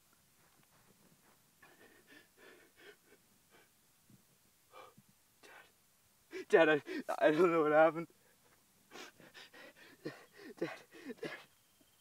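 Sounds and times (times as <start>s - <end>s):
man gasping for breath: 1.6s - 3.7s, 4.7s - 5.6s, 6.3s - 7.2s, 8.9s - 11.6s.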